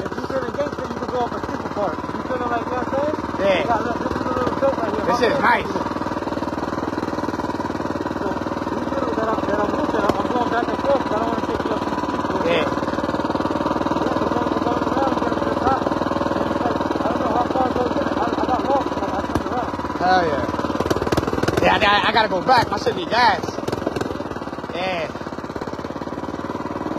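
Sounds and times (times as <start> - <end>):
mini bike engine running: 0.0 - 26.9.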